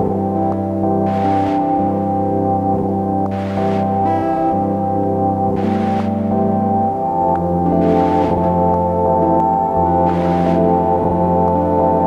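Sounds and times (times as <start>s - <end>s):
ambient drone music: 0.0s - 12.0s.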